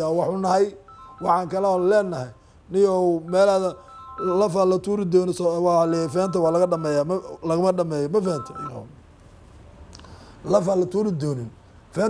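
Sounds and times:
man speaking: 0.0s - 9.0s, 10.5s - 12.0s.

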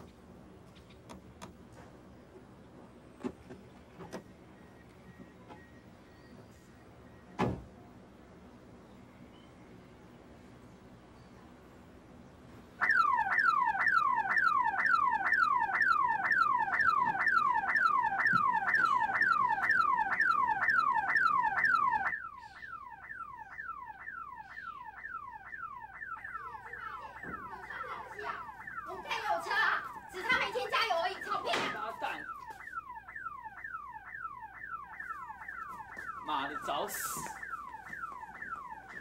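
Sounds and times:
kick to a car: 7.4s - 7.7s
car alarm siren whooping: 12.8s - 39.0s
voices: 22.0s - 33.1s, 35.6s - 39.0s.

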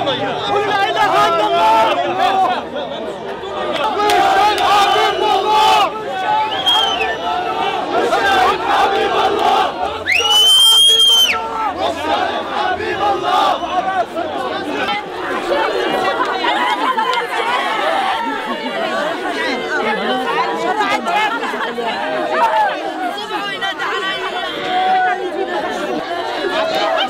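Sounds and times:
crowd of people talking and calling: 0.0s - 27.0s.

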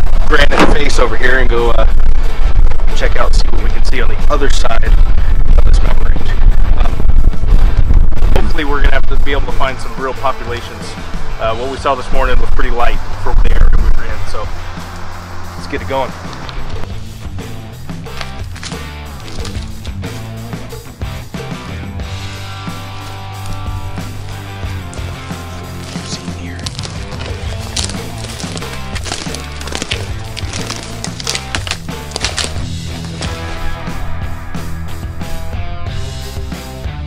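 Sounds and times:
stepping bass line: 0.0s - 10.0s, 12.2s - 37.0s
steady drum beat: 0.1s - 3.0s, 5.4s - 36.9s.

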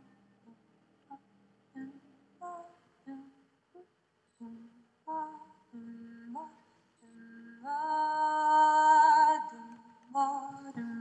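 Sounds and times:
person humming a slow tune: 1.8s - 11.0s.

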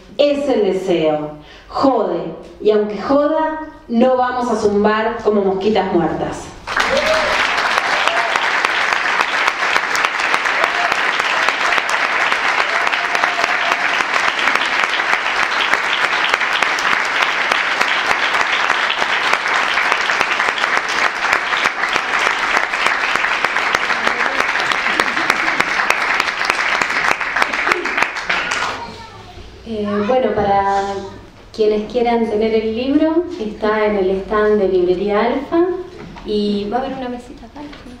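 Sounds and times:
audience applause: 6.7s - 29.1s.

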